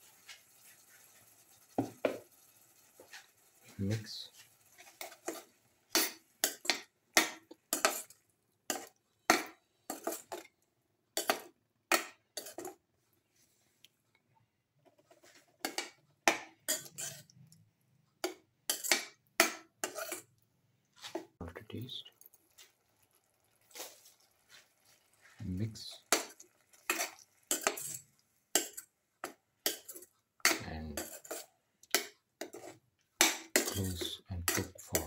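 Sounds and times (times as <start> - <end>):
steel spoon scraping a pan: 0.0 - 10.5, 11.2 - 12.8, 14.9 - 17.4, 18.2 - 20.3, 23.6 - 35.0.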